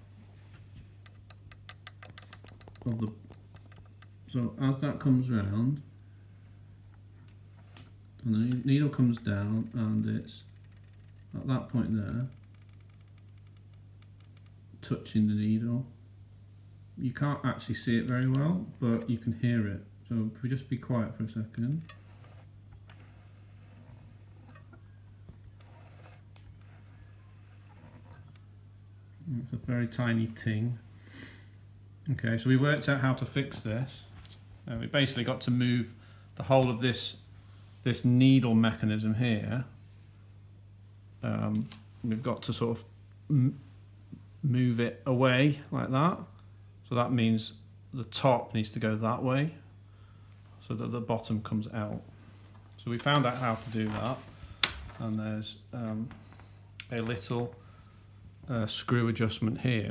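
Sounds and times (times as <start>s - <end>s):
steady low hum: 0.0s - 59.9s
sewing machine mechanism clicking: 1.0s - 4.1s
sewing machine low hum: 21.6s - 28.5s.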